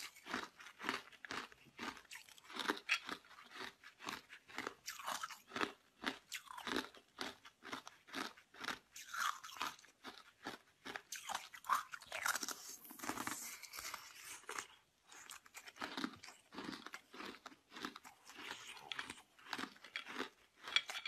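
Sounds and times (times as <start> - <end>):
person crunching ice: 0.0 - 21.0.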